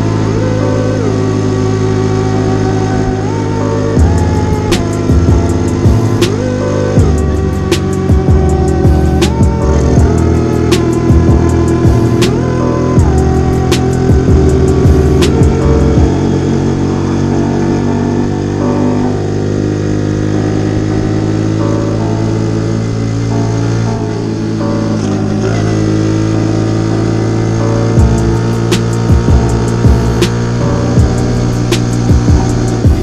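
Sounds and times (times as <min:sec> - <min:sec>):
music with chords and drums: 0:00.0 - 0:25.7, 0:26.8 - 0:33.0
motorbike engine running: 0:00.0 - 0:33.0.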